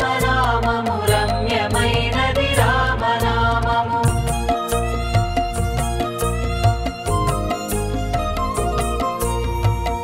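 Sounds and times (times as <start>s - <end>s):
devotional song melody: 0.0s - 10.0s.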